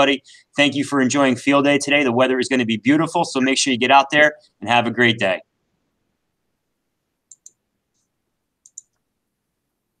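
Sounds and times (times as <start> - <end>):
computer mouse clicks: 7.3 - 9.1.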